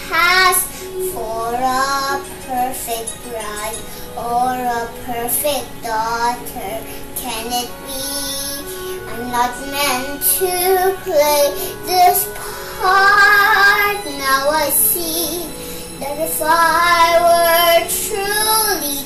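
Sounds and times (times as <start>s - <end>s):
girl singing: 0.0s - 19.0s.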